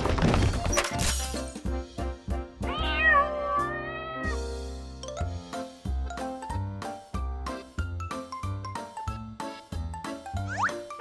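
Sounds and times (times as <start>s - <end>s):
background music: 0.2s - 11.0s
cat meowing: 2.7s - 4.4s.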